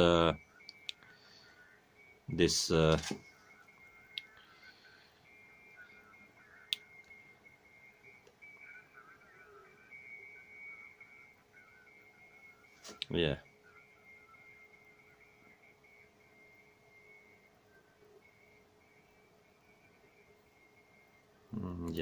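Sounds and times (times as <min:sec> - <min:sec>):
faint high-pitched whine: 0:00.0 - 0:22.0
low hum: 0:00.0 - 0:22.0.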